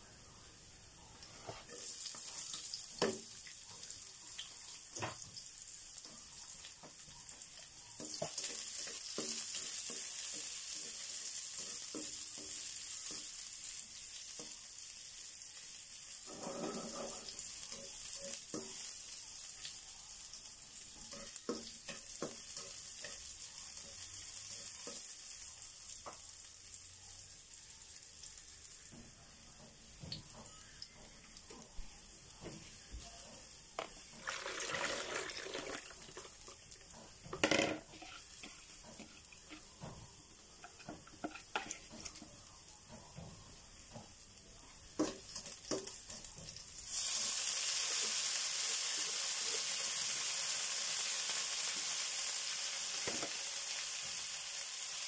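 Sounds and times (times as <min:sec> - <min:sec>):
onions sizzling in a wok: 0:00.0 - 0:55.0.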